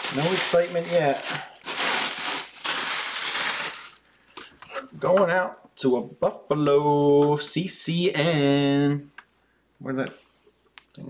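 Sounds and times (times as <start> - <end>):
plastic wrapping crinkling: 0.0 - 4.3.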